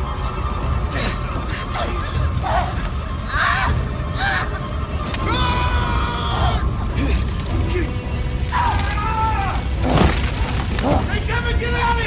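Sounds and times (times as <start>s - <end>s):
film score: 0.0s - 12.0s
low rumble of fire: 0.0s - 12.0s
sharp crack: 8.4s - 11.2s.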